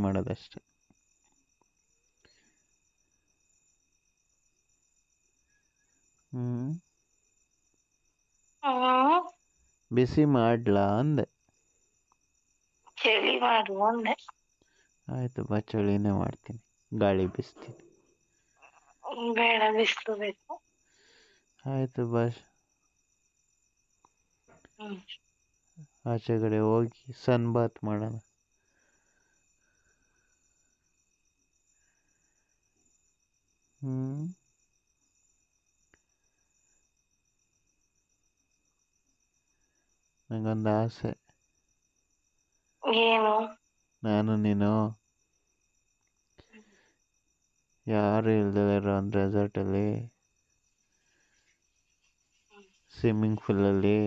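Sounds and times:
faint high pulsing tone: 0:00.0 - 0:08.7, 0:31.6 - 0:34.4
high-pitched insect trill: 0:00.0 - 0:54.0
faint steady hiss: 0:09.2 - 0:42.8.

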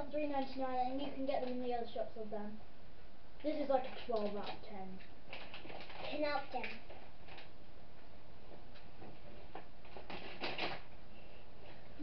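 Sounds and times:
packets rustling on table: 0:05.3 - 0:07.6, 0:09.1 - 0:10.9.

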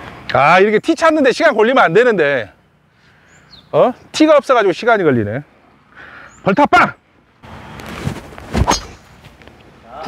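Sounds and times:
golf club swing whoosh: 0:08.0 - 0:09.1
golf club striking ball: 0:08.6 - 0:09.0.

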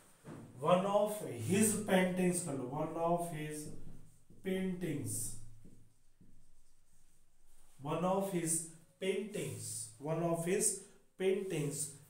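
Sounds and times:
man talking: 0:00.6 - 0:03.8, 0:04.4 - 0:05.4, 0:07.8 - 0:12.0
marker scratching on whiteboard: 0:03.2 - 0:08.4.

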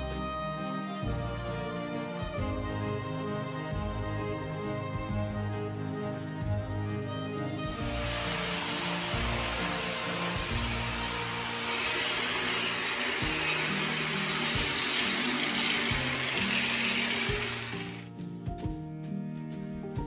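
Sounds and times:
background music: 0:00.0 - 0:20.0
woodworking power tool running: 0:08.0 - 0:18.1.

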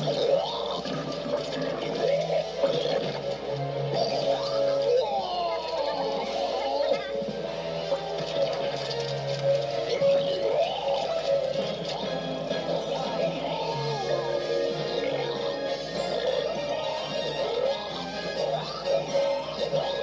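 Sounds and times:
cartoon music with voices: 0:00.0 - 0:20.0.

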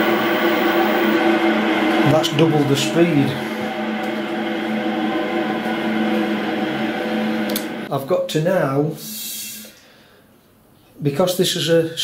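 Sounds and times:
electric motor humming: 0:00.0 - 0:07.9.

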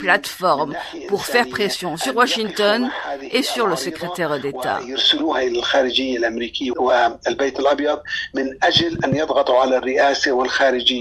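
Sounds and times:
person talking on radio: 0:00.0 - 0:04.8, 0:08.7 - 0:09.3.

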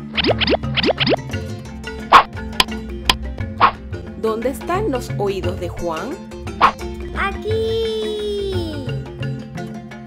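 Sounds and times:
rising boing glide: 0:00.0 - 0:01.3
light background music: 0:00.0 - 0:10.0.

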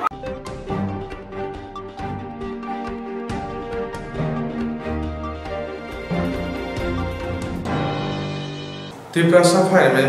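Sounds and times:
news theme music: 0:00.0 - 0:08.9.

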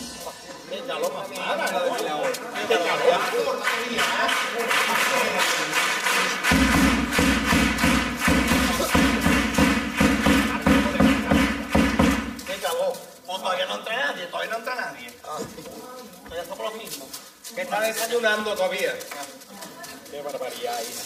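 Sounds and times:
drum strokes in quick beat: 0:00.0 - 0:02.1, 0:06.4 - 0:12.6.

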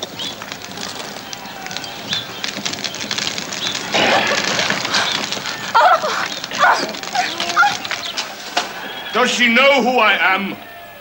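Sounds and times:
clatter of small knocks: 0:00.0 - 0:09.0
birds chirping: 0:00.0 - 0:11.0.

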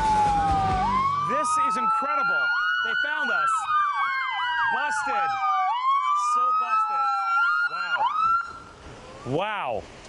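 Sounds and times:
police sirens wailing: 0:00.0 - 0:09.7.

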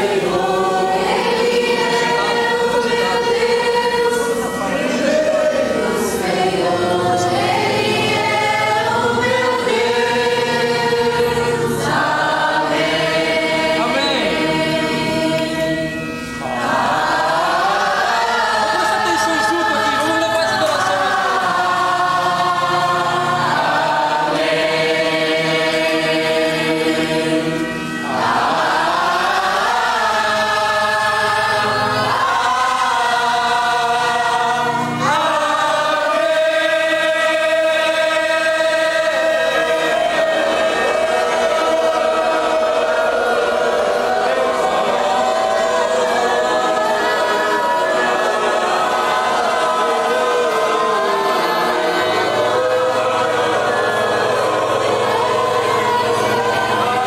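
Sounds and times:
congregation singing: 0:00.0 - 0:57.0.

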